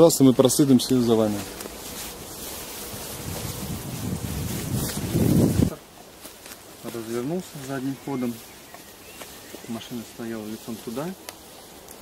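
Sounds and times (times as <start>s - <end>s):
wind buffeting microphone: 3.0s - 5.8s.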